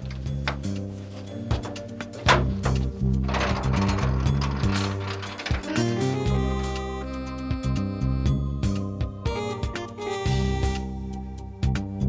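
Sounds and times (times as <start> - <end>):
garage door opening: 0.0 - 7.4
background music with low notes: 0.0 - 12.0
garage door lock clanking: 1.5 - 7.2.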